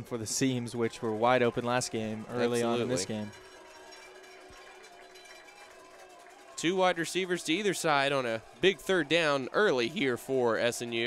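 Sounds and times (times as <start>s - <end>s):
faint stadium ambience: 0.0s - 11.0s.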